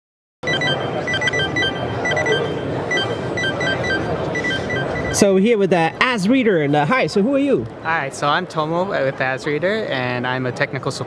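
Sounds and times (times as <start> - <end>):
barcode scanner beeping: 0.4 - 6.1
crowd hubbub: 0.4 - 11.0.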